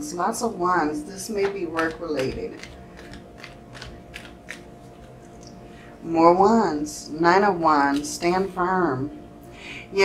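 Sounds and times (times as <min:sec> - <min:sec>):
cards being shuffled: 0:01.7 - 0:05.3.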